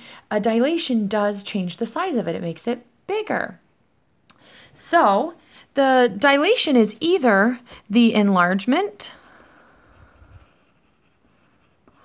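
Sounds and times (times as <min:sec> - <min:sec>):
pencil scratching on paper: 0:09.1 - 0:12.0.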